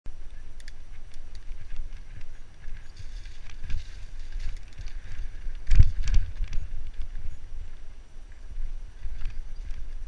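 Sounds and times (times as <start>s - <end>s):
wind rumbling on microphone: 0.1s - 10.0s
bike clicks and rattles: 0.2s - 10.0s.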